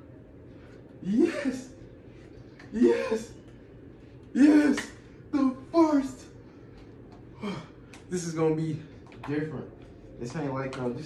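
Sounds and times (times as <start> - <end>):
man shouting: 1.0 - 1.7, 2.7 - 3.4, 4.4 - 6.3.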